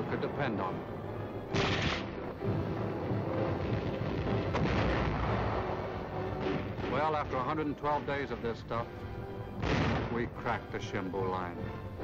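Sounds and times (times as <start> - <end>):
sharp explosion blast: 1.5 - 2.1, 3.5 - 7.0, 9.6 - 10.2
heavy rumble of shellfire: 1.5 - 7.6, 9.6 - 10.6.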